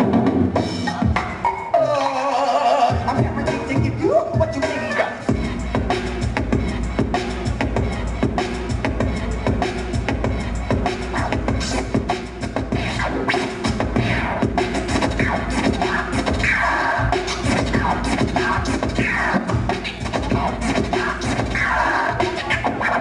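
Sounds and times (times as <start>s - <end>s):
hip-hop beat with deep bass: 0.0s - 23.0s
record scratching: 12.7s - 23.0s.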